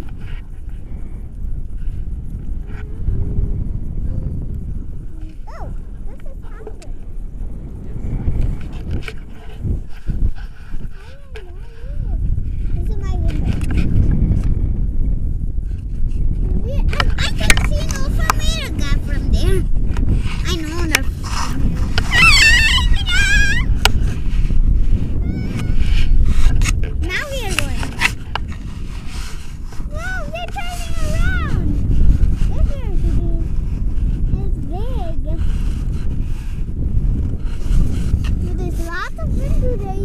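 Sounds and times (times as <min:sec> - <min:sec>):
wind rumbling on microphone: 0:00.0 - 0:40.0
high wavering voice calling out: 0:22.1 - 0:23.7.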